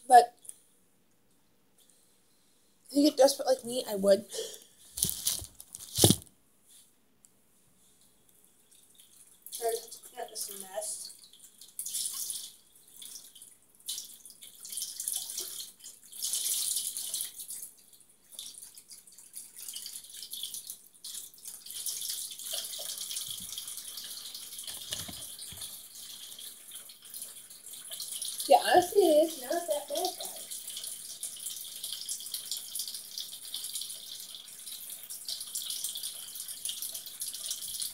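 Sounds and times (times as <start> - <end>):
tap water running into sink: 18.4 - 37.9.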